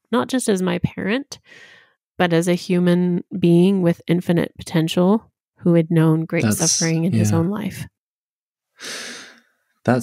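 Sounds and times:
man breathing into microphone: 8.8s - 9.5s.

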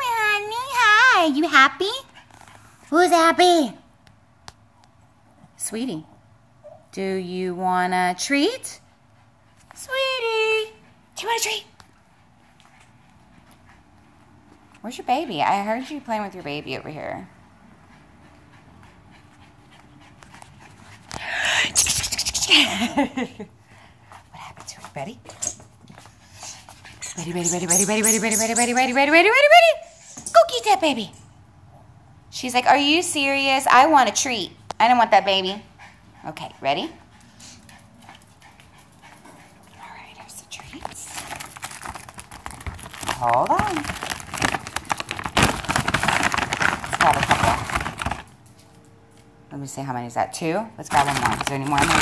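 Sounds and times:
dog panting: 8.6s - 21.5s, 35.2s - 42.6s
plastic bag crinkling: 40.8s - 48.4s, 50.9s - 52.0s.

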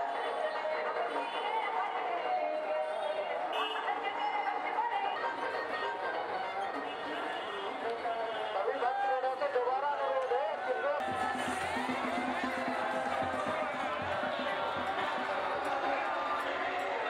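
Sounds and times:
people singing over music: 0.0s - 7.7s, 11.0s - 17.0s
crowd chatter: 0.0s - 17.0s.

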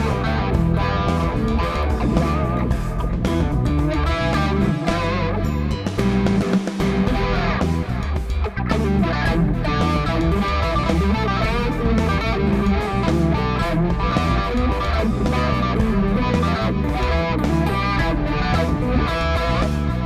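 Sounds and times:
electric guitar with delay: 0.0s - 20.0s.

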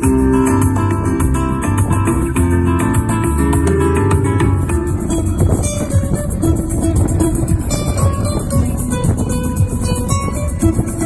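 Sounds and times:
flamenco guitar music: 0.0s - 11.0s.

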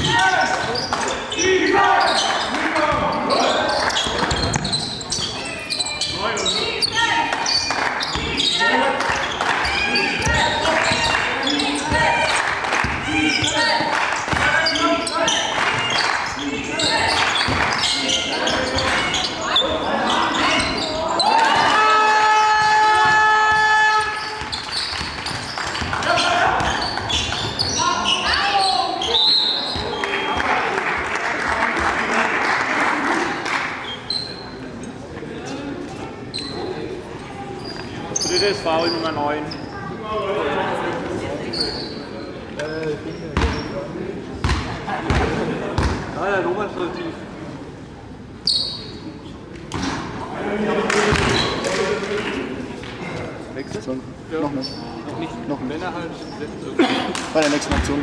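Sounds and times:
players and spectators shouting: 0.0s - 4.0s, 5.3s - 24.5s.

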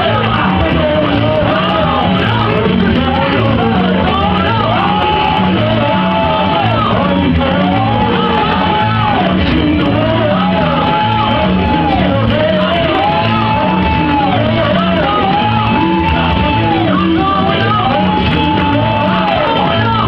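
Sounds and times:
instrumental accompaniment with beat: 0.0s - 20.0s.

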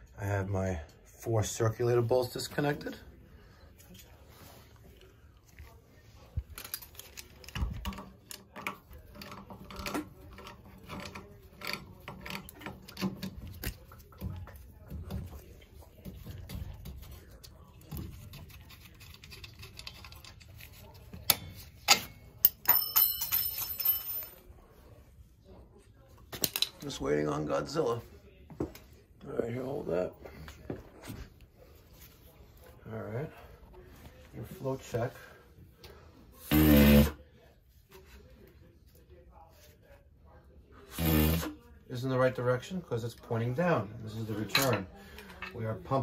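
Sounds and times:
bright ringing metal clink: 22.4s - 24.4s.

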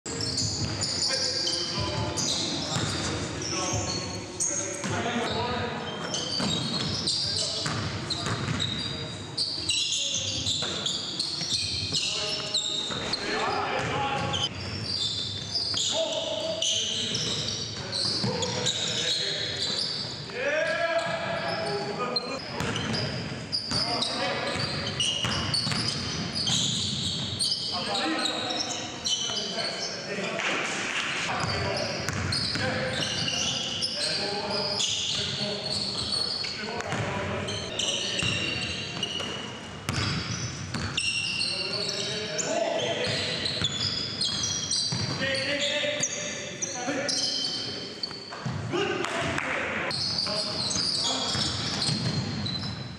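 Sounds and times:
sneakers squeaking: 0.1s - 30.6s, 31.2s - 52.9s.

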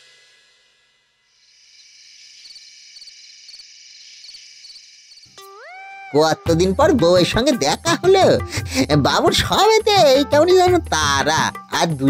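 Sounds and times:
crickets chirping: 1.2s - 6.3s.

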